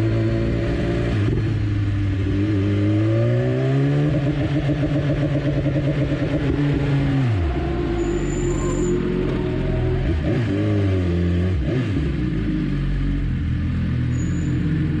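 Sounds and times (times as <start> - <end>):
motorcycle engine revving and idling: 0.0 - 15.0.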